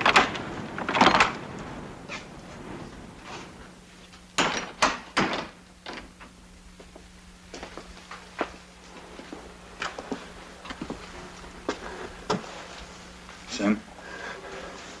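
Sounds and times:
knocks and clunks: 0.0s - 6.4s
steady low hum: 0.0s - 15.0s.

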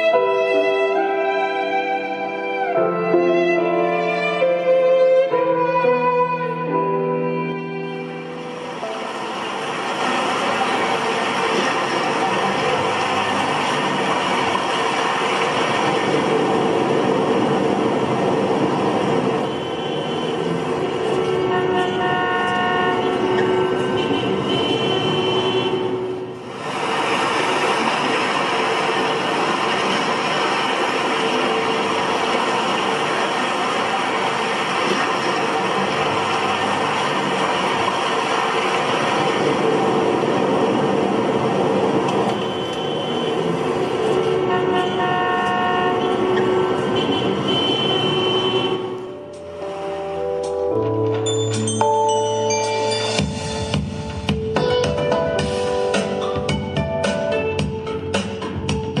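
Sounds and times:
traffic rumble: 7.9s - 50.2s
car horn toots: 19.4s - 20.6s, 21.2s - 26.1s, 42.2s - 43.5s, 44.1s - 49.2s.

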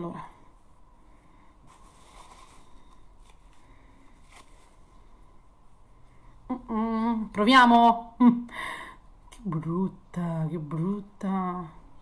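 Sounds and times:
handling sounds near microphone: 1.7s - 3.6s.

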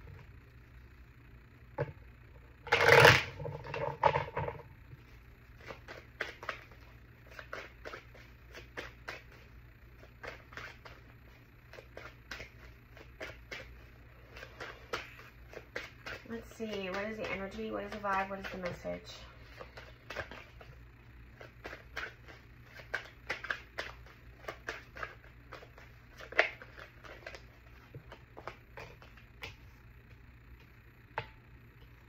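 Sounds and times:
cards shuffled by hand: 5.6s - 29.7s.

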